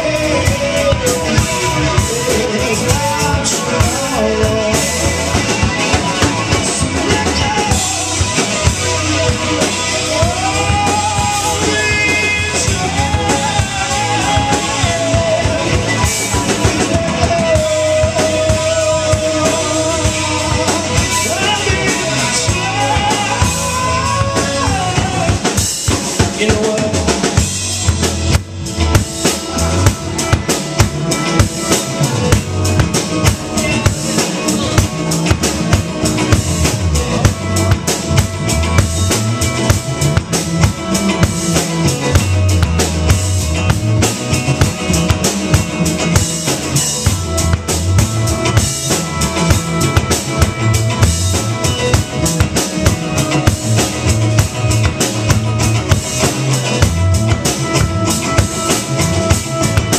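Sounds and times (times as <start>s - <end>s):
drum kit: 0.0s - 59.9s
electric bass: 0.0s - 59.9s
electric guitar: 0.0s - 59.9s.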